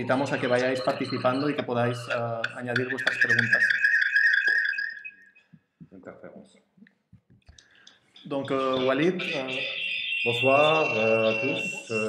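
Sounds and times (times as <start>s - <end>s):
high ringing tone: 0.0s - 5.6s, 8.2s - 12.0s.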